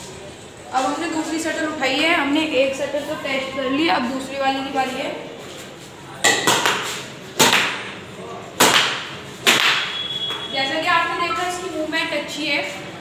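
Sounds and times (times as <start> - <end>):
racket striking shuttlecock: 8.6 - 10.4.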